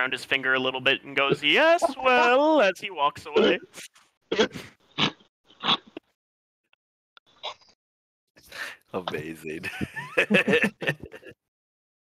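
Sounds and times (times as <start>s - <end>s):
man laughing: 1.4s - 2.6s, 9.6s - 11.4s.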